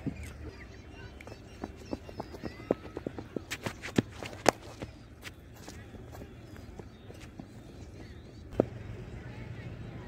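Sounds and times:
running footsteps on concrete: 1.0s - 8.6s.

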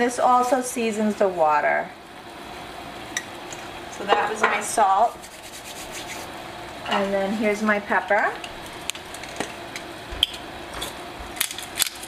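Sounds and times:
water boiling in a pan: 0.0s - 12.0s.

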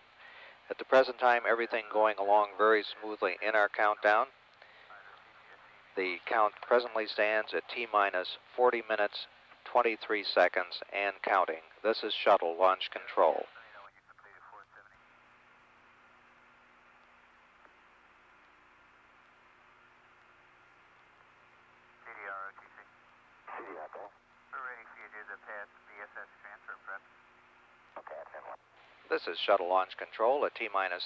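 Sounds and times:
tape hiss: 0.0s - 31.0s
radio voice chatter: 10.2s - 15.0s, 22.0s - 27.1s, 27.9s - 29.5s.

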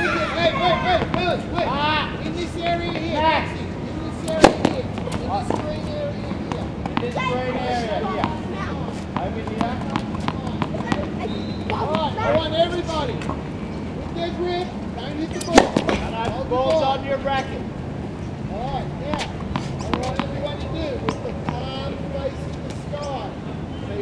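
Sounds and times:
tennis racket striking ball: 4.3s - 5.8s, 9.1s - 11.1s, 15.4s - 16.4s, 19.1s - 21.7s.

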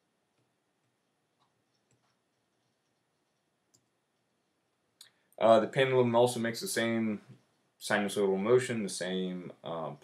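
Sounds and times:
soft clicks: 0.3s - 4.3s.

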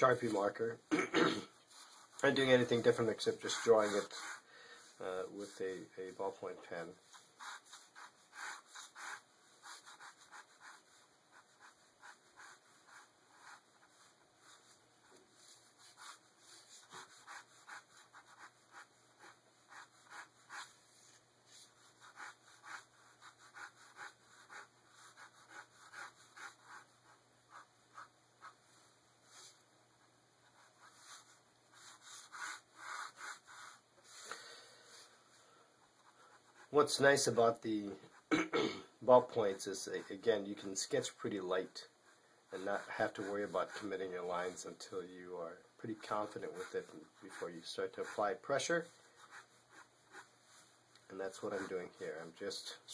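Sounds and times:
ballpoint pen scratching on paper: 1.7s - 5.6s, 7.0s - 29.6s, 30.4s - 34.2s, 35.8s - 37.3s, 42.0s - 44.6s, 45.9s - 52.0s.

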